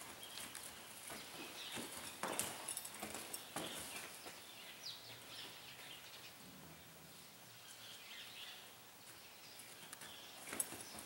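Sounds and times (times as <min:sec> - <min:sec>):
hooves striking in sand: 0:00.0 - 0:06.0.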